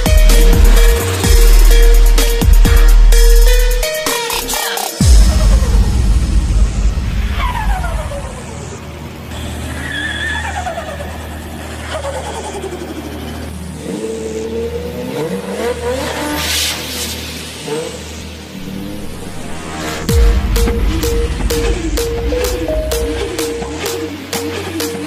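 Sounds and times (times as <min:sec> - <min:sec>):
engines passing at speed: 0:00.0 - 0:03.2, 0:05.0 - 0:25.0
engines revving: 0:00.0 - 0:25.0
tyre squeal: 0:09.3 - 0:13.4.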